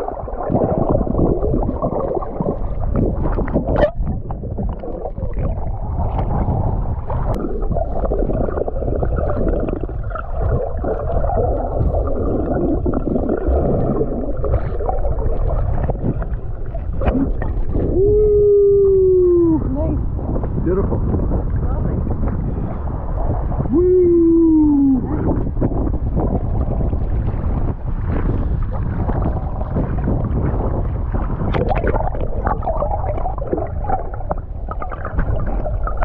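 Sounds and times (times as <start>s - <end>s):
underwater rush of water and bubbles: 0.0s - 36.0s
muffled underwater voice: 17.1s - 20.9s, 23.6s - 25.6s.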